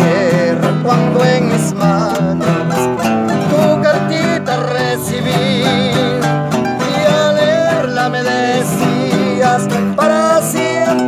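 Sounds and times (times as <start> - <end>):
picked acoustic guitar melody: 0.0 - 11.0
strummed acoustic guitar chords: 0.0 - 11.0.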